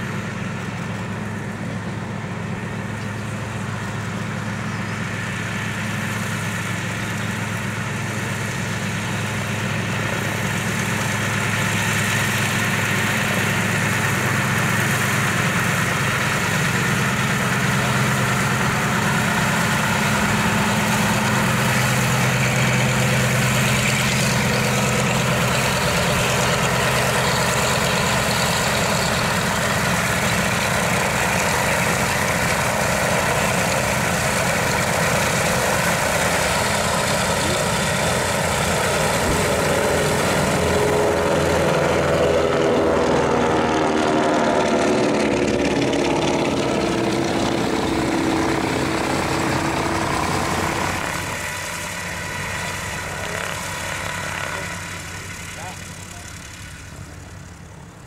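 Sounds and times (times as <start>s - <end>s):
propeller plane passing overhead: 0.0s - 58.0s
radial engines droning: 0.0s - 58.0s.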